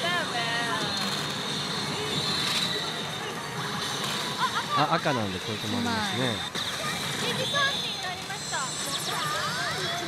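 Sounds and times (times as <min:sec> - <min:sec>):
pachinko machine noise: 0:00.0 - 0:10.0.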